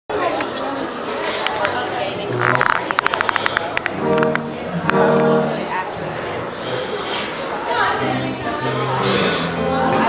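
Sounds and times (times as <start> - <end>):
murmur of seated crowd: 0.1 - 10.0
electric guitar picked notes: 3.8 - 6.0
electric guitar chords ringing: 3.9 - 5.8.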